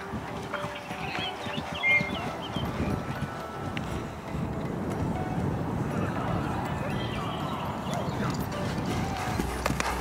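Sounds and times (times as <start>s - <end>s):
horse hoofbeats on grass: 0.0s - 10.0s.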